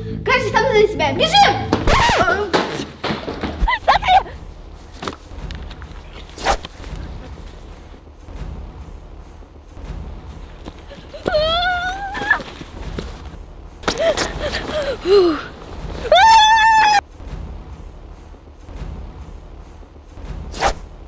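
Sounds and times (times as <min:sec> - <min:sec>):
girl's wavering scream: 0:11.2 - 0:12.5, 0:16.0 - 0:17.0.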